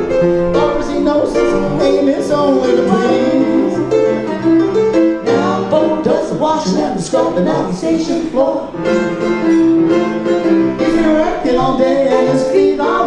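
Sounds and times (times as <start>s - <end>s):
upright piano playing: 0.0s - 13.0s.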